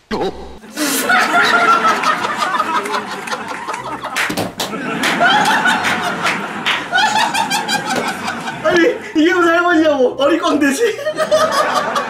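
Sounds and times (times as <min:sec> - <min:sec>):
people laughing hard: 0:00.1 - 0:09.5, 0:10.5 - 0:12.0.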